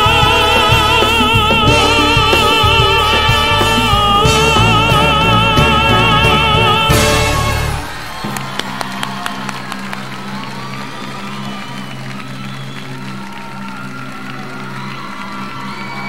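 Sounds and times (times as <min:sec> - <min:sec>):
steady low drone: 0:00.0 - 0:08.4
audience applauding and cheering: 0:00.0 - 0:16.0
whistles and whoops: 0:07.8 - 0:16.0.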